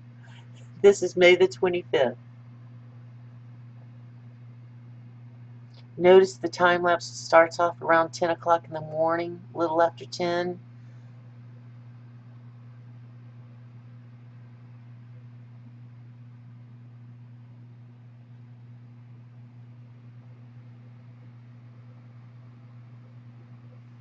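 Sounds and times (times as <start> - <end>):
low electrical hum: 0.0 - 24.0.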